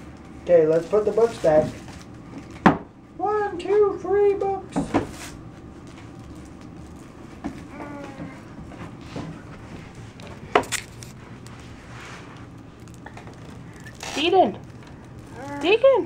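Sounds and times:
low room hum: 0:00.0 - 0:16.0
knocks on cardboard books: 0:02.6 - 0:02.9, 0:04.7 - 0:05.2.

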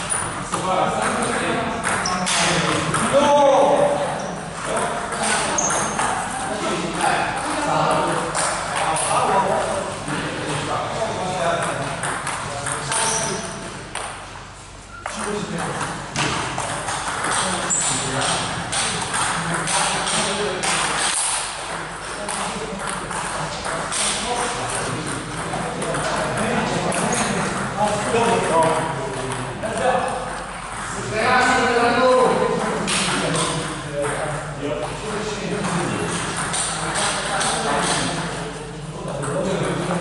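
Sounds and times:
people talking: 0:00.0 - 0:14.0, 0:15.0 - 0:40.0.

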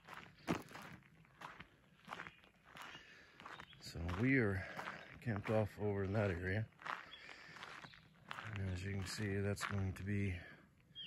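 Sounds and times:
footsteps on gravel: 0:00.0 - 0:10.5.

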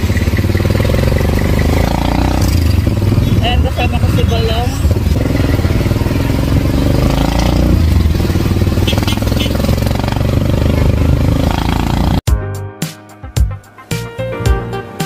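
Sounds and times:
motorcycle engine running: 0:00.0 - 0:12.3.

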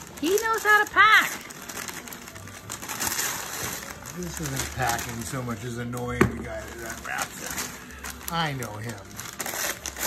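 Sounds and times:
wrapping paper crinkling and tearing: 0:00.0 - 0:10.0.

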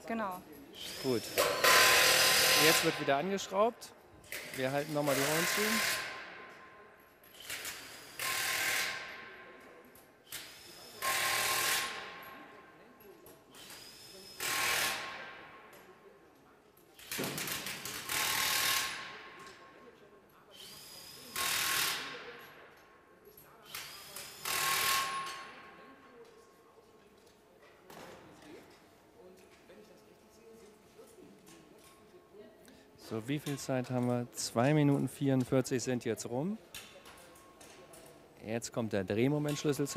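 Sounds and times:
impact wrench hammering: 0:01.3 - 0:03.1.

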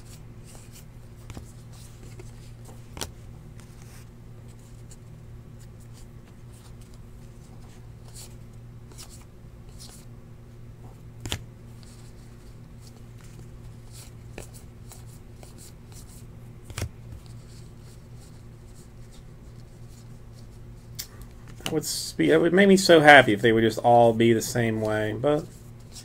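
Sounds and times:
steady low hum: 0:00.0 - 0:26.0
cards flicking against cards: 0:11.2 - 0:12.0, 0:12.8 - 0:17.4.

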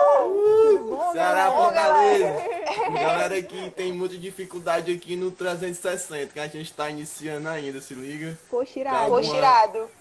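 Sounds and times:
voices whooping and hollering: 0:00.0 - 0:03.0.

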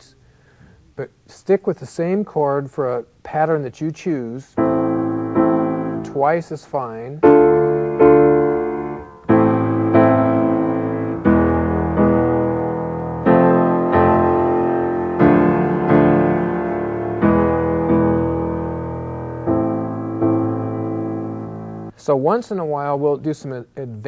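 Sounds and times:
grand piano chords: 0:04.5 - 0:22.0.

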